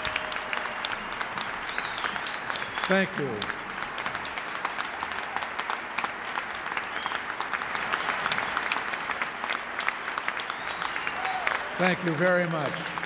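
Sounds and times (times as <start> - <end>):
audience applauding: 0.0 - 13.0.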